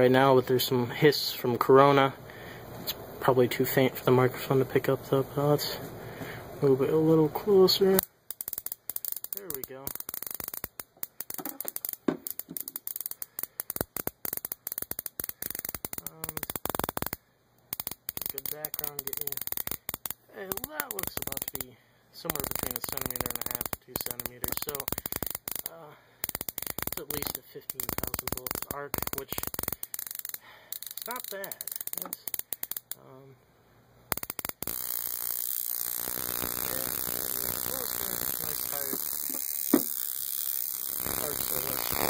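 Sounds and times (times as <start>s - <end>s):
crackle of snapping sparks: 7.6s - 33.0s, 34.1s - 42.0s.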